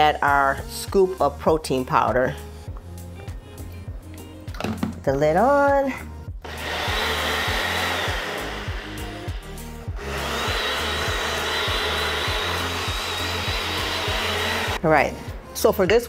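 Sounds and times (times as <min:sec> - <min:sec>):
blender motor whirring: 0:06.4 - 0:14.8.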